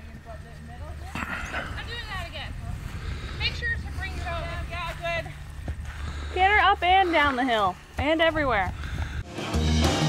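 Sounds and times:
voices talking: 0.0 - 8.8.

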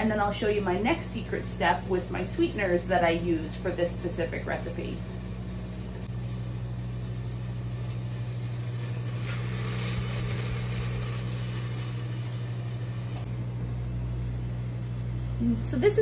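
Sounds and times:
exhaust hood fan humming: 0.0 - 16.0.

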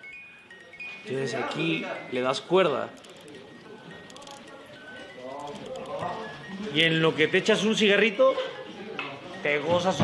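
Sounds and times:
music box notes: 0.0 - 6.9.

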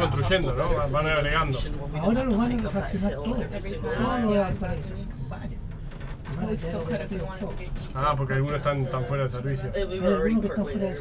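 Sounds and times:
people talking quietly: 0.0 - 11.0.

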